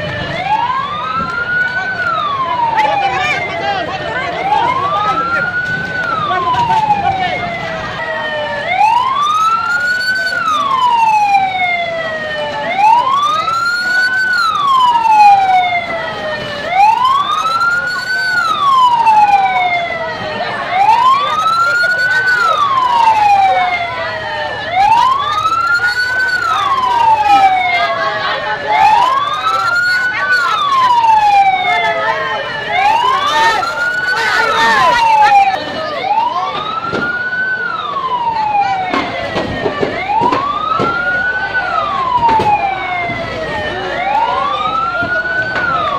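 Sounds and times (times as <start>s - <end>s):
emergency vehicle siren wailing: 0.0s - 45.9s.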